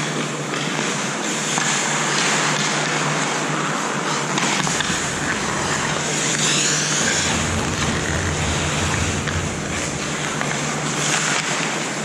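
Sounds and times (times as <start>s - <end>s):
steady low hum: 4.5s - 11.2s.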